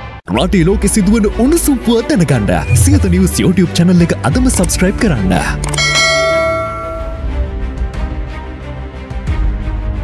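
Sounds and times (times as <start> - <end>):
background theme music: 0.0 - 10.0
bright bell-like chime: 5.8 - 7.3.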